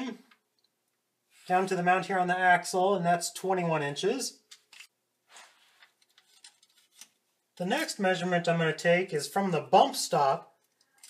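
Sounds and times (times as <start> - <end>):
soft handling rustle: 4.5 - 7.2.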